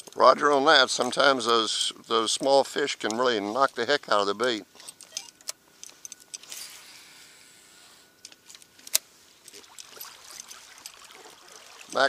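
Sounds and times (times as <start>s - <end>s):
faint trickling water: 9.4s - 12.0s.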